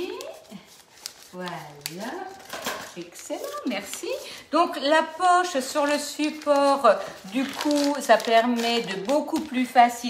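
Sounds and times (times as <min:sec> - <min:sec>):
rustling of piping bag: 0:00.0 - 0:10.0.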